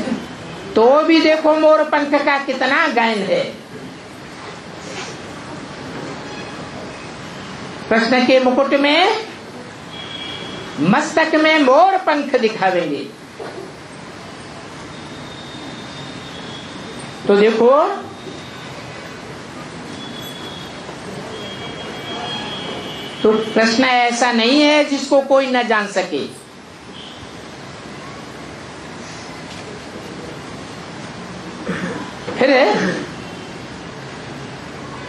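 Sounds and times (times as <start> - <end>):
steady hiss and rumble: 0.0 - 35.0.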